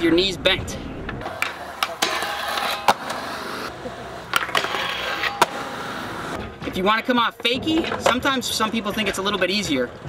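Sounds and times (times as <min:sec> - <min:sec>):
skateboard clacks: 0:01.2 - 0:06.4
skateboard grinding on metal bar: 0:01.2 - 0:06.4.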